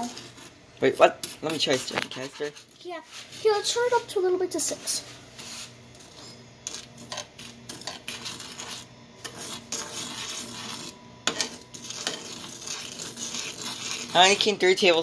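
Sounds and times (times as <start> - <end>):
spoon stirring sugar in pan: 0.0 - 4.0, 4.7 - 15.0.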